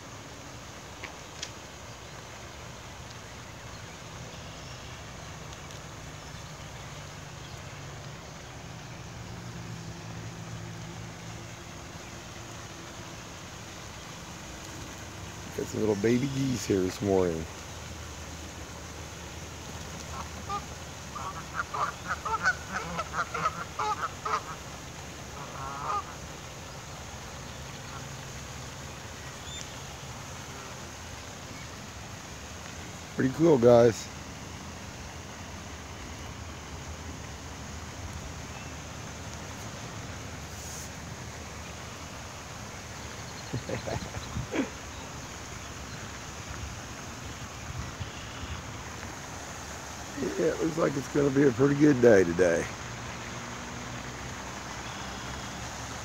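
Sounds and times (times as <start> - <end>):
steady background hiss: 0.0 - 56.0
geese honking: 20.0 - 26.2.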